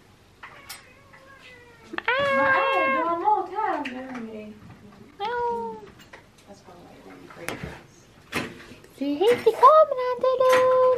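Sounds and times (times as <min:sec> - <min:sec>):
cat meowing faintly: 0:00.4 - 0:03.4.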